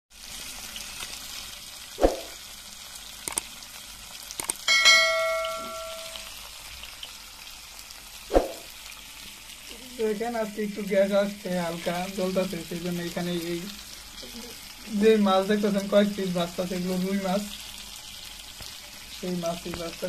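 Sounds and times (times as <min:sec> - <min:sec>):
fish sizzling in a frying pan: 0:00.1 - 0:20.0
bell-like chime: 0:04.7 - 0:06.3.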